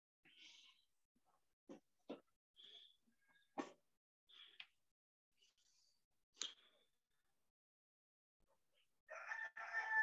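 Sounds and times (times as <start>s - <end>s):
rooster crowing faintly: 9.1s - 10.0s.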